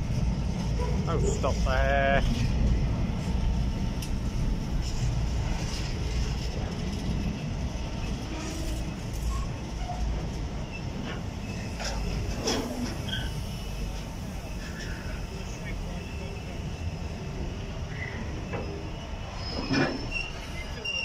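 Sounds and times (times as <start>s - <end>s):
train wheels rumbling on rails: 0.0s - 21.0s.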